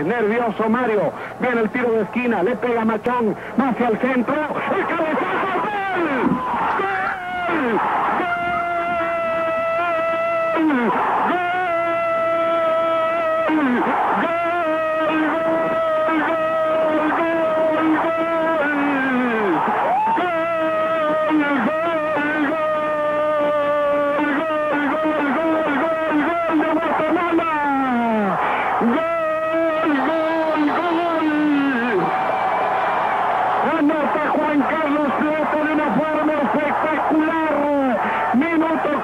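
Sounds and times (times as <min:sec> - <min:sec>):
man shouting drawn-out goal cry: 0:04.5 - 0:32.5, 0:33.1 - 0:39.0.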